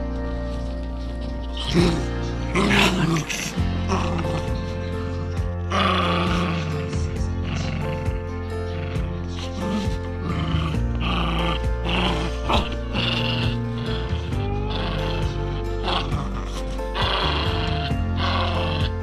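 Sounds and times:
background music with steady beat: 0.0 - 19.0
dog growling: 0.0 - 19.0.

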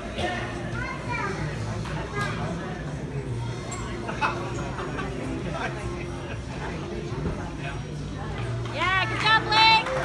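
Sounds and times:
chatter of children and adults: 0.0 - 9.5.

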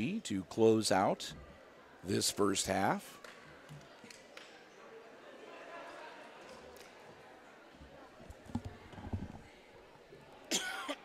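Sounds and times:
man coughing: 10.5 - 11.0.

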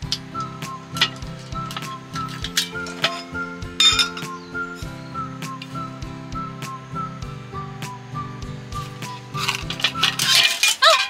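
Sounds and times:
background music with steady beat: 0.0 - 10.7
metal cookware clinking on stove: 1.0 - 4.3, 9.0 - 11.0.

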